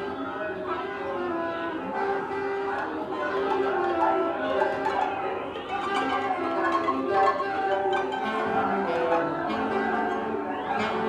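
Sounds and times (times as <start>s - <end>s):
orchestra improvising: 0.0s - 11.0s
plucked notes: 0.0s - 11.0s
bowed strings: 1.3s - 11.0s.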